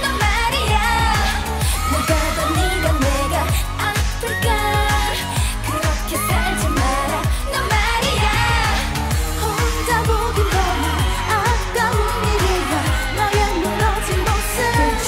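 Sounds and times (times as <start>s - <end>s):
driving beat and bass: 0.0s - 15.0s
woman singing: 0.0s - 15.0s.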